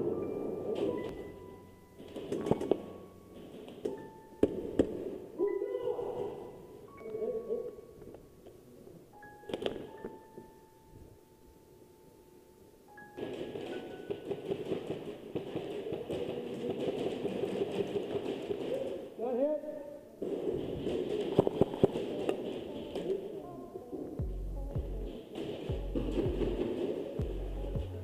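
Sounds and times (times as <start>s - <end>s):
muffled voices: 14.8s - 28.0s.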